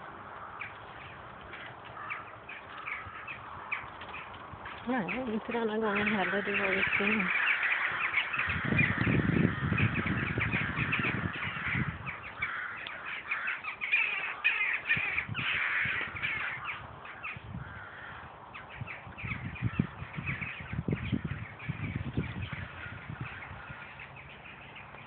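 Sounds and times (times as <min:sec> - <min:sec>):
flock of birds calling: 0:00.0 - 0:25.0
wind gusting on microphone: 0:00.0 - 0:25.0.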